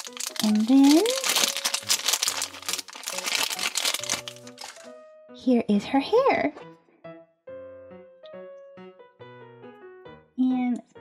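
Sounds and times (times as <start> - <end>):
plastic bag crinkling: 0.0 - 4.9
soft background music: 0.0 - 11.0.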